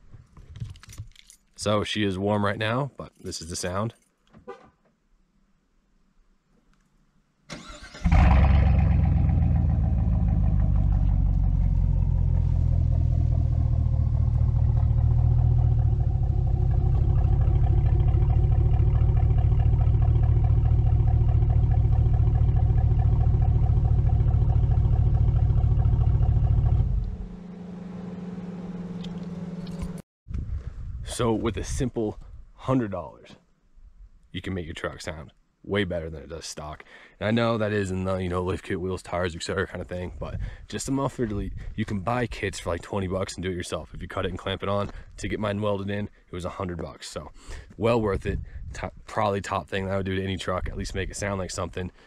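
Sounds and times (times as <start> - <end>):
truck engine idling: 8.3 - 30.0.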